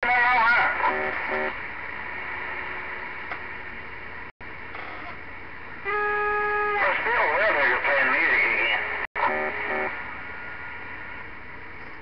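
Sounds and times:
warbling radio tone: 0.0s - 1.6s, 5.9s - 10.7s
radio static hiss: 0.0s - 12.0s
short radio beeps: 9.2s - 9.9s.

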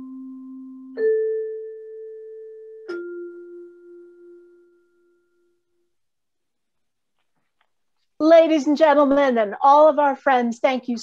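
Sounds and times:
mellow bell-like chime tone: 0.0s - 5.6s.

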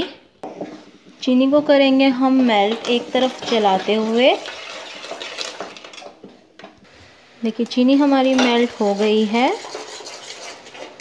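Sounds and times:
spoon scraping metal pan: 7.5s - 11.0s.

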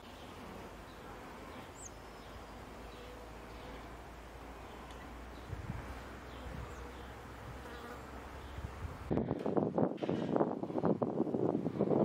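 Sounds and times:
insects buzzing: 0.0s - 9.1s.

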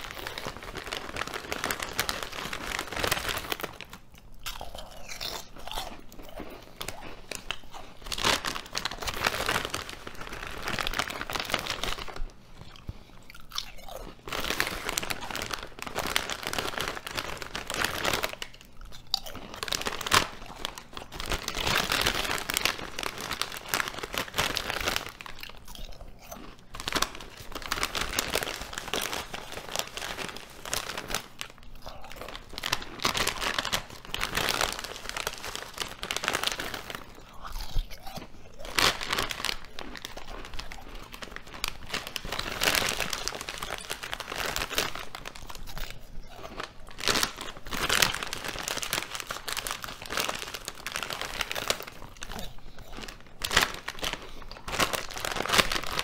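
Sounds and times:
crunching potato chips: 0.0s - 56.0s.

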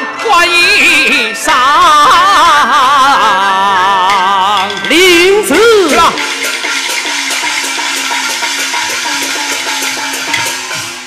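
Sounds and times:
percussion: 0.0s - 11.0s
opera band fast repeated notes: 1.9s - 11.0s.

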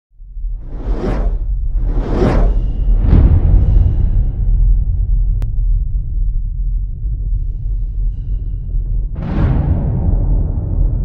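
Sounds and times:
deep rumble: 0.1s - 11.0s
cinematic whoosh: 0.4s - 5.4s.

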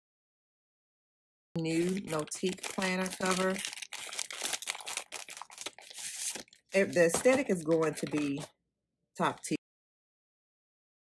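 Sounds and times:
plastic wrapping crinkling: 1.6s - 8.5s.

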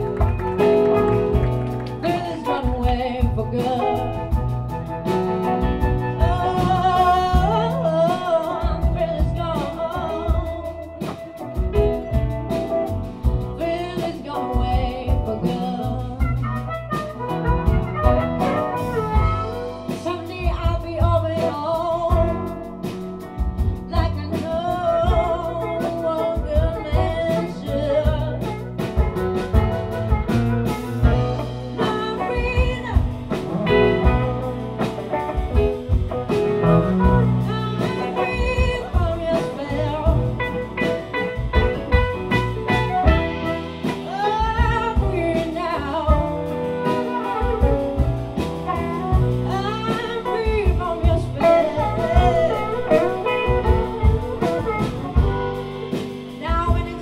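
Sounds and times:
person singing: 0.0s - 4.4s, 6.1s - 12.3s, 13.6s - 16.7s, 23.8s - 28.8s, 36.9s - 48.0s, 48.7s - 57.0s
blues band playing: 0.0s - 57.0s
wailing harmonica lead: 51.4s - 56.1s.

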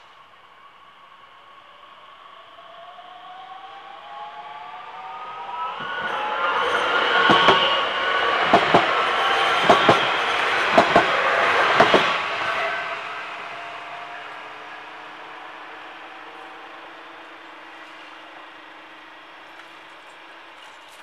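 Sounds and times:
train running noise: 0.0s - 21.0s
train whine rising in pitch: 0.0s - 21.0s
train wheel clacks: 5.8s - 13.0s.

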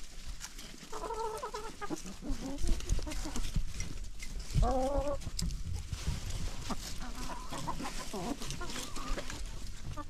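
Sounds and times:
scratching in dry leaves: 0.0s - 10.0s
chickens clucking: 0.2s - 10.0s.

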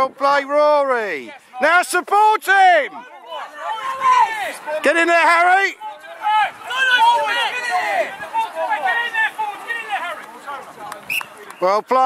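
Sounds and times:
voices shouting: 0.0s - 12.0s
man shouting: 0.4s - 10.2s.

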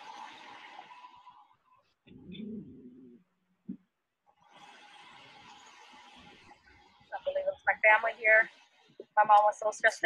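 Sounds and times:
low cooing bird call: 2.1s - 3.2s.

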